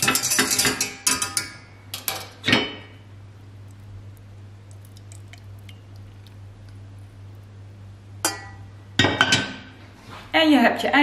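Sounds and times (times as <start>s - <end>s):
steady low hum: 1.4s - 10.3s.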